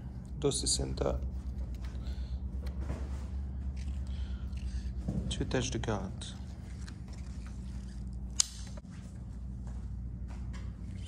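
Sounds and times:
low room hum: 0.0s - 11.0s
sharp click: 8.4s - 8.8s.

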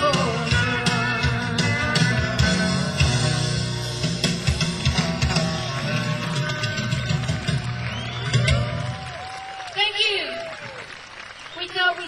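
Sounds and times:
country rock band playing: 0.0s - 9.3s.

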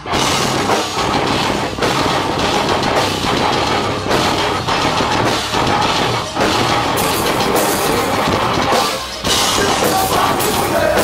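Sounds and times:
distorted electric guitars: 0.0s - 11.0s
drum kit: 0.0s - 11.0s.

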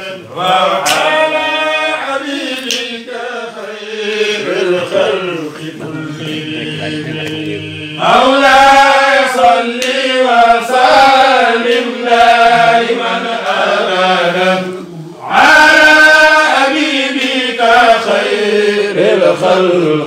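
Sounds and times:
voices chanting a prayer: 0.0s - 20.0s.

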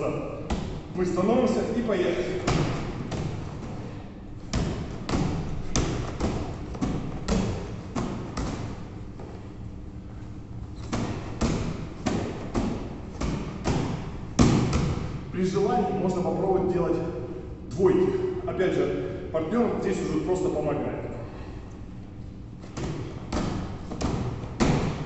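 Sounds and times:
medicine ball thudding into hands: 0.4s - 9.6s, 10.6s - 15.3s, 22.6s - 25.0s.

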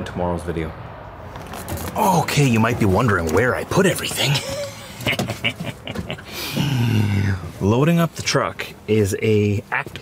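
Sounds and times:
man chuckling: 4.2s - 7.3s.

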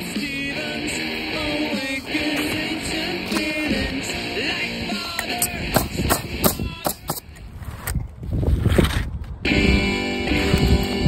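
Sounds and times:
rock music with guitar and drums: 0.0s - 7.4s, 9.4s - 11.0s.

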